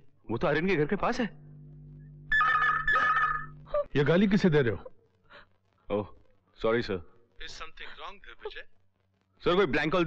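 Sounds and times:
low steady hum: 0.0 - 10.0
telephone ringing: 2.3 - 3.7.

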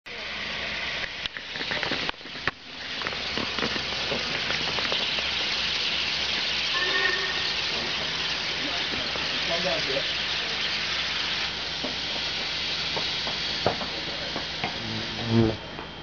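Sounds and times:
steam locomotive hissing steam: 0.1 - 16.0.

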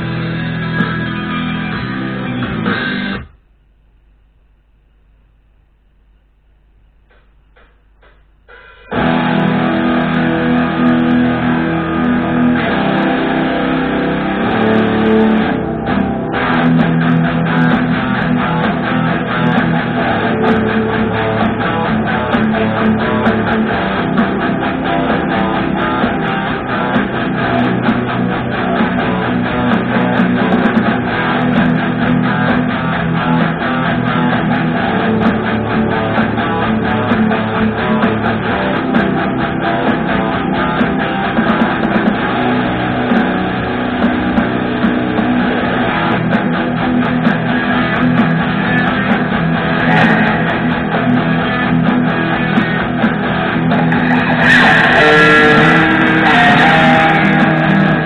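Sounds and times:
electric guitar sustained note: 8.6 - 58.0.

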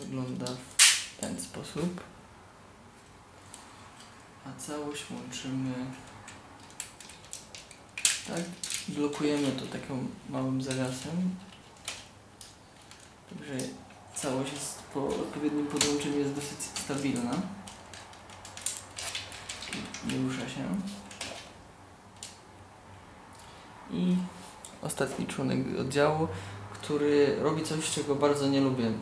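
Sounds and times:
plastic toy parts clicking: 6.2 - 9.6, 16.8 - 20.2.

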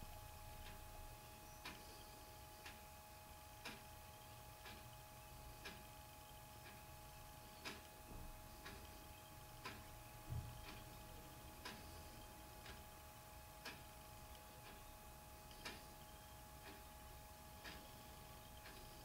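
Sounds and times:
faint regular ticking: 0.0 - 19.0
faint steady whine: 0.0 - 19.0.

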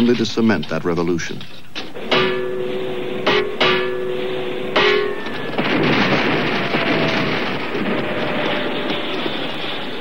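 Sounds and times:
metallic gong strikes ringing: 2.0 - 5.7.

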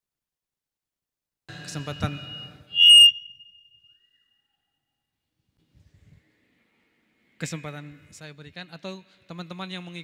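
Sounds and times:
microphone feedback squeal: 1.5 - 4.6.

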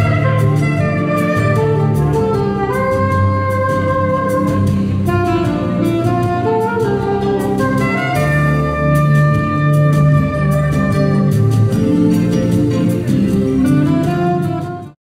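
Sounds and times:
steady drum beat: 0.0 - 14.6
bass: 0.0 - 15.0
saxophone melody: 0.0 - 15.0.

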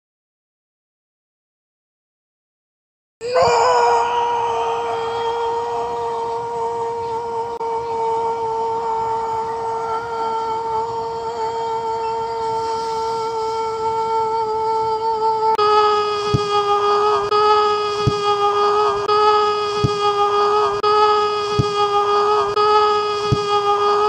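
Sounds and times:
man screaming: 3.2 - 9.7.

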